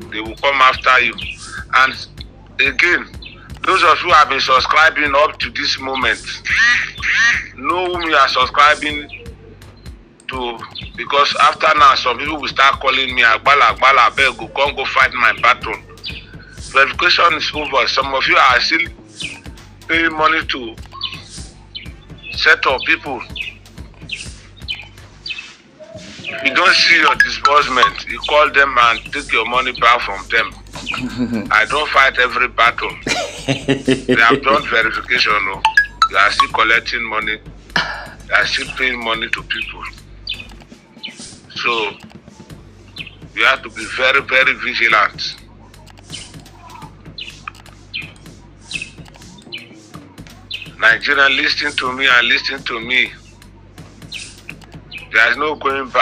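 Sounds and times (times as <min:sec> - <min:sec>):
steady low hum: 0:00.0 - 0:25.3, 0:26.5 - 0:56.0
small bird chirping: 0:00.2 - 0:03.7, 0:05.8 - 0:10.0, 0:10.6 - 0:11.0, 0:15.4 - 0:16.8, 0:20.8 - 0:26.6, 0:39.6 - 0:43.7, 0:45.4 - 0:51.1, 0:52.5 - 0:55.4.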